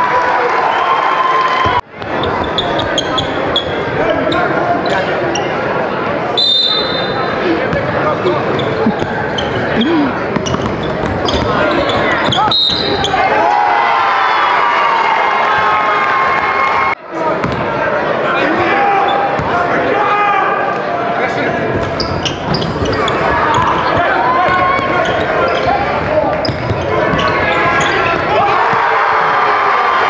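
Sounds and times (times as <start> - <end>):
crowd voices and shouts: 0.0 - 30.0
shoe squeak: 2.1 - 5.6, 8.2 - 13.2, 21.8 - 28.2.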